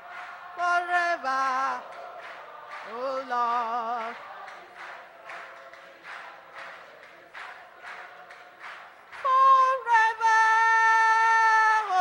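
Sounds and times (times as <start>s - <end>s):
congregation clapping slowly: 0.0s - 12.0s.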